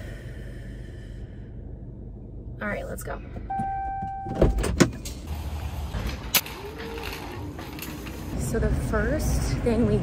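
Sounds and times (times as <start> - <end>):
low rumble: 0.0 - 4.2.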